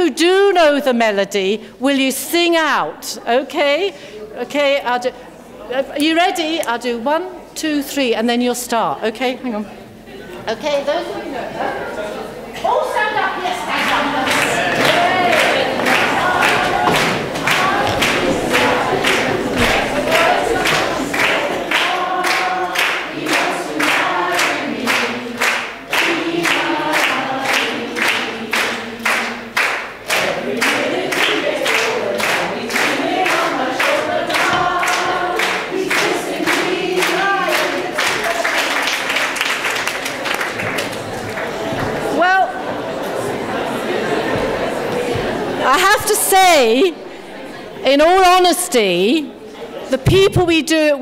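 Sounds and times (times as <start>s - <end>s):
people singing together: 13.1s - 48.0s.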